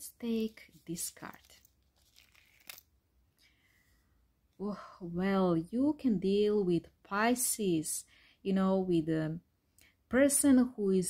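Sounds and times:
faint card rustles: 0:00.2 - 0:02.9.

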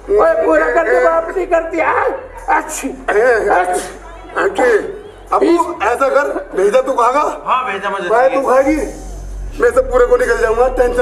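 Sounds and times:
man yelping and whimpering: 0:00.1 - 0:06.7.

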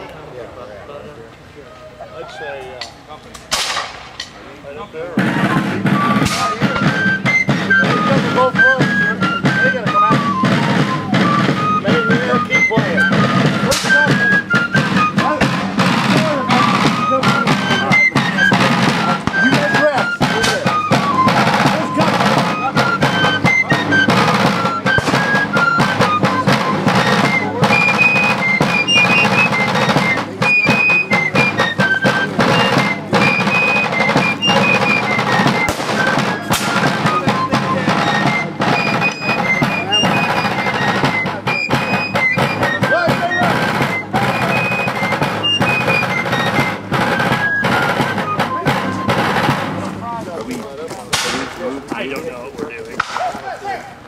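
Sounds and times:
rapid field drum strokes: 0:00.0 - 0:54.0
shrill fife melody: 0:02.0 - 0:54.0.

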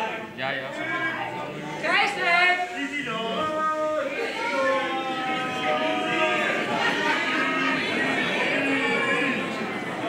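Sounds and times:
wavering drawn-out human voices: 0:02.7 - 0:10.0.

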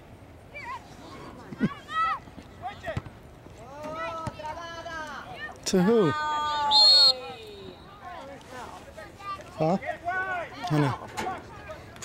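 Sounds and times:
people shouting calls: 0:06.0 - 0:08.3
shrill whistle blast: 0:06.7 - 0:07.9.

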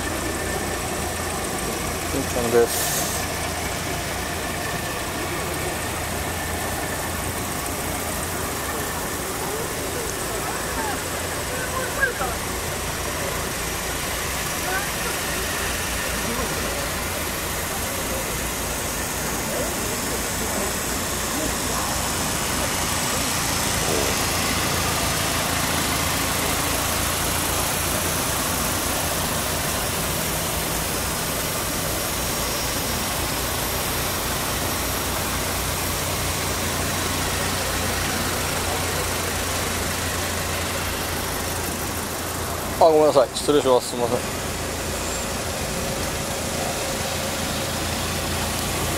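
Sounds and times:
car engine idling: 0:00.0 - 0:48.9.

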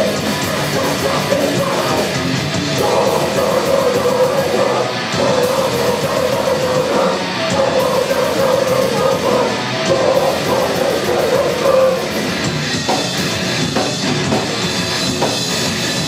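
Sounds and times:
metal band playing loud: 0:00.0 - 0:16.0.

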